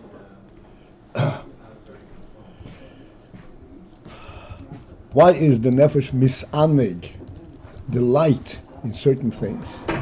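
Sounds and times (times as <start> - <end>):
man coughing: 1.1 - 1.5.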